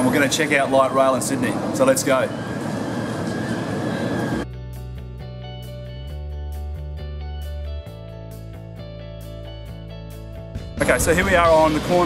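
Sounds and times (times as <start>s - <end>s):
street traffic noise: 0.0s - 4.5s.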